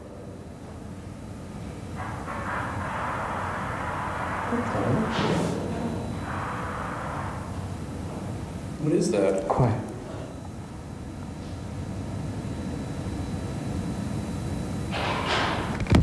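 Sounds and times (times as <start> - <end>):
muffled noises: 0.0 - 13.4.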